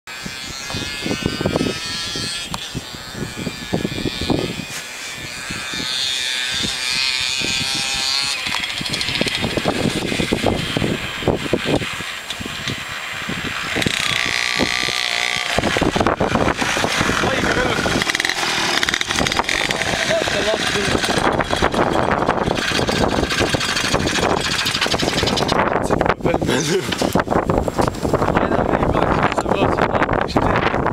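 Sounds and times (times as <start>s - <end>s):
minibike engine running: 0.1s - 29.6s.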